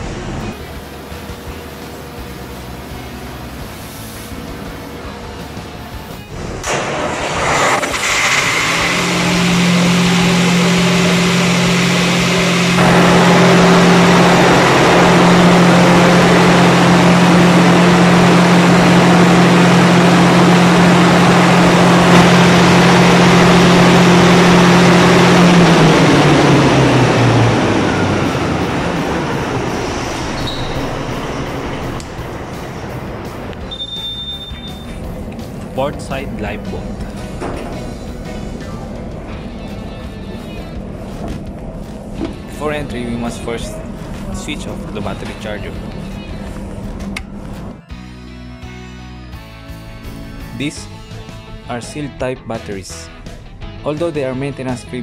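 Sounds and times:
diesel generator engine running: 0.0 - 48.6.

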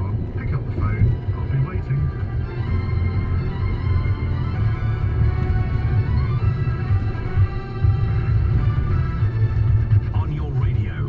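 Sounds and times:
car rumble on road: 0.0 - 11.0
music on car radio: 0.0 - 11.0.

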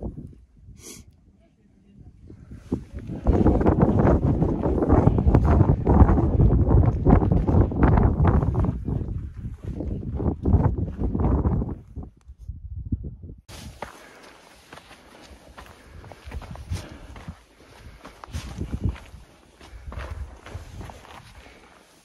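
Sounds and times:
wind buffeting microphone: 2.0 - 13.8, 15.5 - 21.6
footsteps on rocky trail: 2.9 - 11.5, 13.5 - 22.0.

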